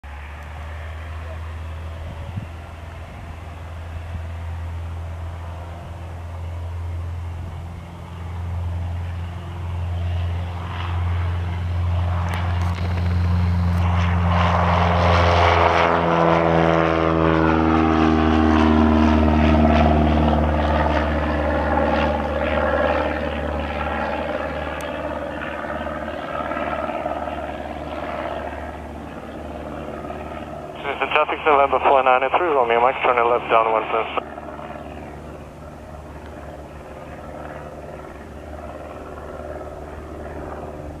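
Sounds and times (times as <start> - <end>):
light aircraft engine and propeller: 0.0 - 41.0.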